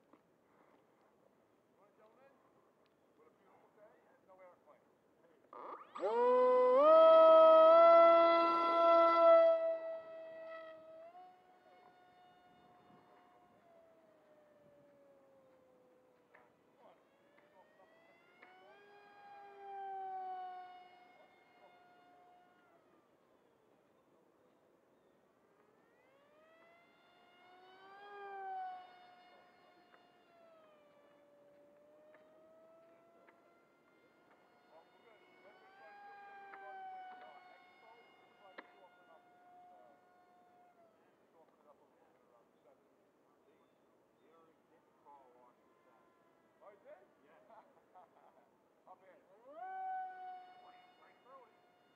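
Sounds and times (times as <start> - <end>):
electric motor whine: 5.6 - 23.2, 25.6 - 40.8.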